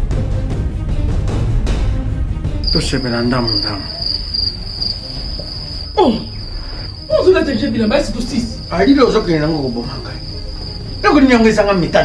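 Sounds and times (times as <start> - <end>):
cricket trilling: 2.6 - 12.0.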